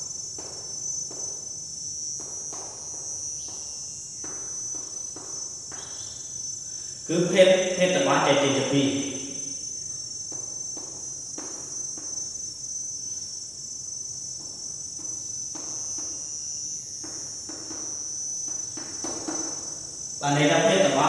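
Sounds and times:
high-pitched insect drone: 0.0 - 21.0.

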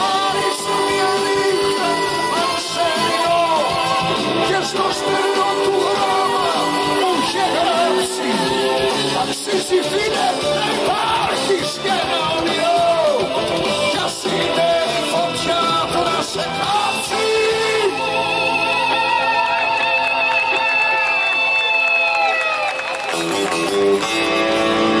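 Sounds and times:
man singing: 0.0 - 20.7
live rock band playing: 0.0 - 21.6, 22.7 - 25.0.

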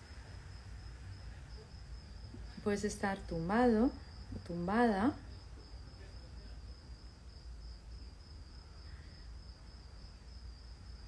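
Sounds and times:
crickets trilling: 0.0 - 11.0
low steady hum: 0.0 - 11.0.

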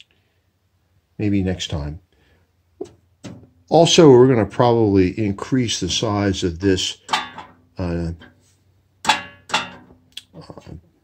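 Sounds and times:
sheet metal clanks: 6.9 - 8.4, 9.0 - 10.1.

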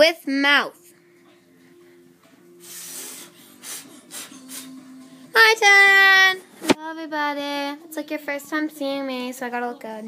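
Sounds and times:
person blowing hard: 2.6 - 4.8.

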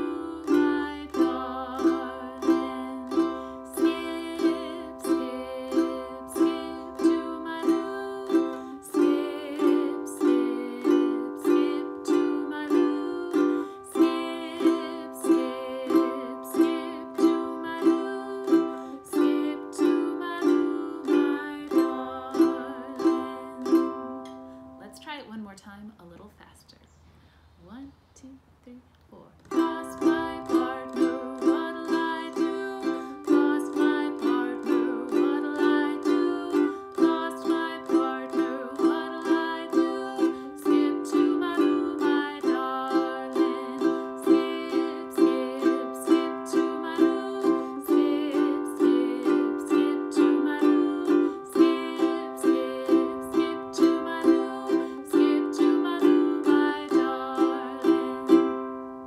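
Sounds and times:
ukulele strumming: 0.0 - 25.1, 29.5 - 59.0.

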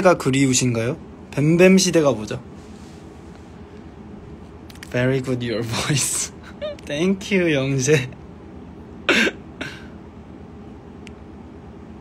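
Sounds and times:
low room hum: 0.0 - 12.0
man's breathy chuckle: 6.4 - 6.9.

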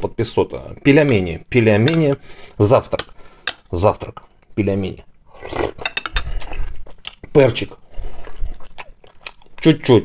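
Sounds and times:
tableware clicking and clinking: 5.8 - 6.3.

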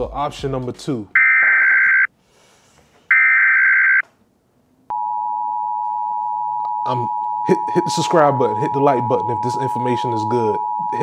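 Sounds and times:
electronic telephone rings: 3.1 - 4.0
steady telephone tone: 4.9 - 11.0.

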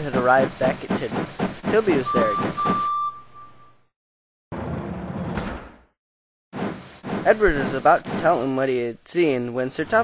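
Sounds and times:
toy turntable scraping rumble: 0.0 - 2.7.

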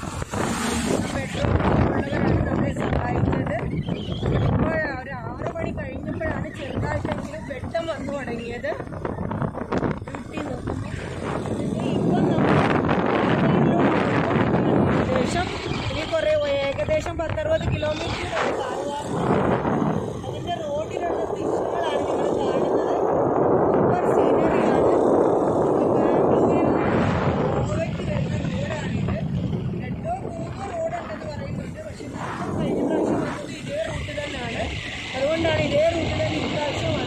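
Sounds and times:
motorcycle engine running: 0.0 - 37.0
wind rushing over microphone: 0.0 - 37.0
person talking: 20.1 - 37.0.

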